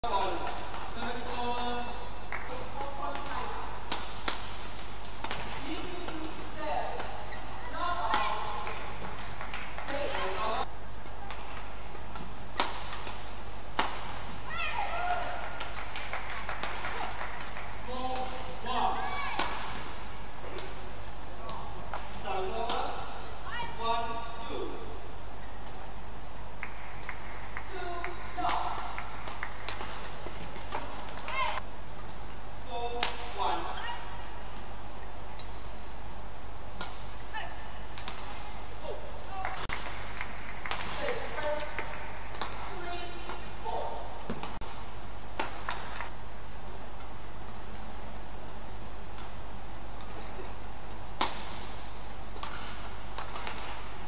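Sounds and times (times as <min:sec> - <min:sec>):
low arena hum: 0:00.0 - 0:54.0
rackets striking shuttlecock: 0:00.1 - 0:10.1, 0:11.0 - 0:14.5, 0:26.7 - 0:33.4, 0:36.7 - 0:37.2, 0:37.9 - 0:38.6, 0:39.4 - 0:46.1, 0:48.4 - 0:54.0.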